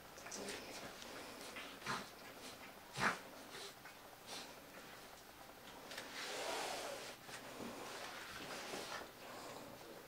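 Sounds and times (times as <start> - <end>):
soft breathy hissing: 6.1 - 10.0.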